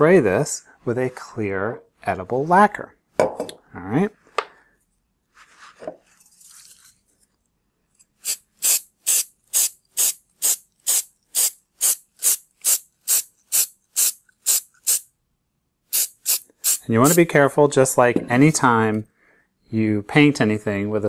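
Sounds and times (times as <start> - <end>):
aerosol can mixing ball rattling: 8.2 - 15.0.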